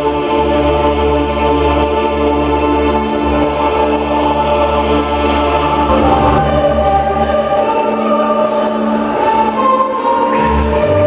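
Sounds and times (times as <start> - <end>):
choir holding long notes: 0.0 - 11.0
steady low drone note: 0.8 - 9.3.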